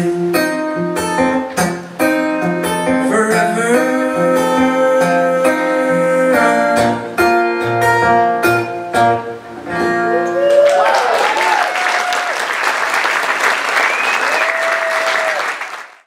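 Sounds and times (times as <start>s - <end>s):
acoustic guitar strumming: 0.0s - 10.4s
man singing: 2.8s - 7.2s.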